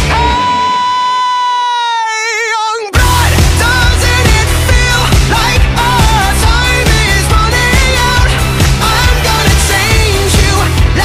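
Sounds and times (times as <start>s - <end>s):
backing music: 2.9s - 11.0s.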